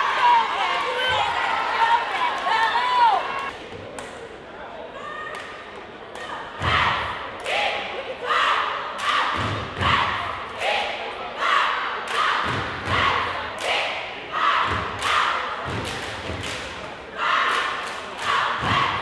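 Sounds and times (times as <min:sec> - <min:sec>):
cheer squad chanting: 0:06.6 - 0:15.9, 0:17.1 - 0:19.0.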